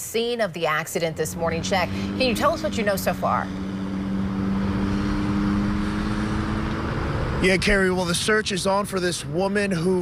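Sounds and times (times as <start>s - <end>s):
roadside traffic hum: 0.0s - 10.0s.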